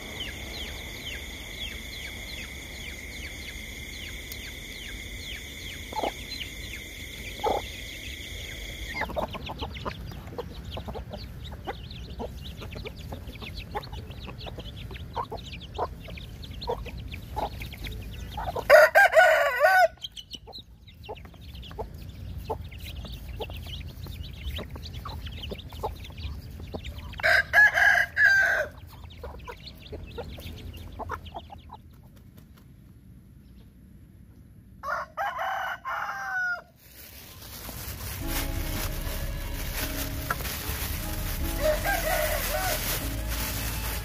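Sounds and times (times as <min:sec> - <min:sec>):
chickens calling: 0:00.0 - 0:32.6, 0:34.8 - 0:44.0
rooster crowing: 0:18.6 - 0:20.0, 0:27.2 - 0:28.8, 0:34.8 - 0:36.8, 0:41.4 - 0:43.6.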